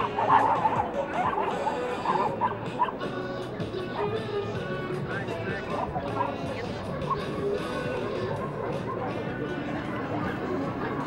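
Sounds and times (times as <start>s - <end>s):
dog barking: 0.0s - 3.0s
background music: 0.0s - 11.0s.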